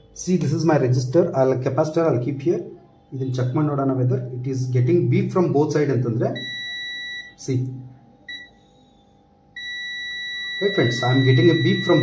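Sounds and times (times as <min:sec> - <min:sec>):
multimeter continuity beep: 0:06.3 - 0:07.5, 0:08.2 - 0:12.0.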